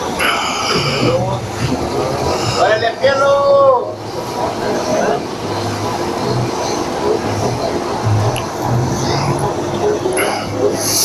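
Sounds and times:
faint steady hum: 0.0 - 11.0
faint voices: 0.0 - 11.0
vehicles running: 0.0 - 11.0.

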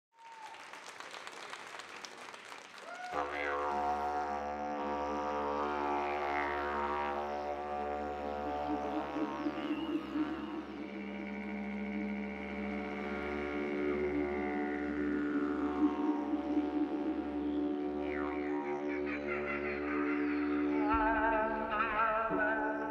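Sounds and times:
didgeridoo drone: 3.1 - 22.9.

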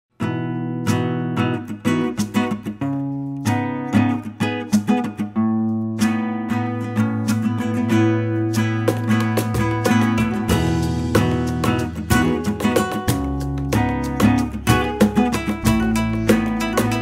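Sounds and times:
acoustic guitar strumming and picking: 0.1 - 17.0.

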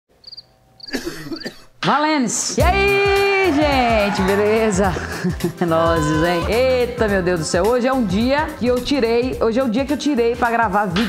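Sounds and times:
woman coughing: 0.9 - 1.8
woman speaking: 1.8 - 11.0.

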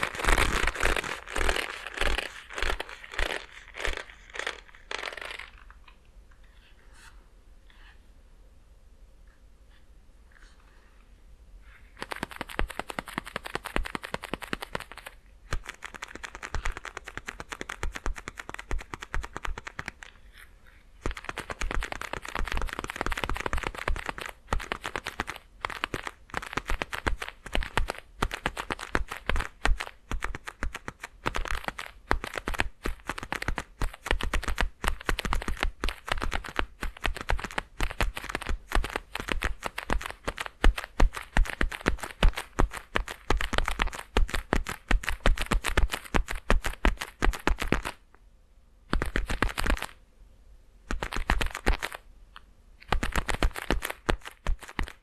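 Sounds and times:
leather gloves creaking: 0.0 - 5.7.

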